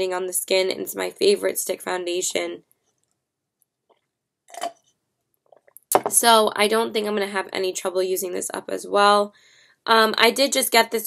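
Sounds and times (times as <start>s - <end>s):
person speaking: 5.9s - 9.3s.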